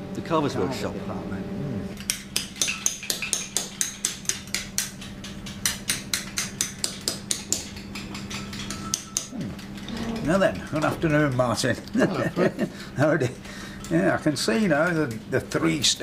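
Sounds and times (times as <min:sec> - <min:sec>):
steady low hum: 0:00.0 - 0:16.0
mallet striking chisel into stone: 0:02.0 - 0:09.3.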